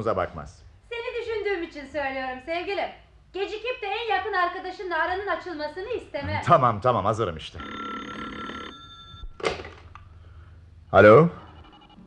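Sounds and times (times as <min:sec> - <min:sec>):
telephone bell ringing: 0:07.6 - 0:09.4, 0:11.2 - 0:12.0
telephone receiver thunk: 0:09.4 - 0:09.9.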